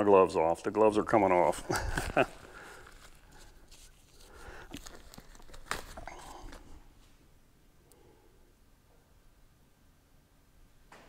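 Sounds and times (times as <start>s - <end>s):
gloves crinkling being peeled off: 1.4s - 7.1s
person laughing: 1.6s - 2.6s.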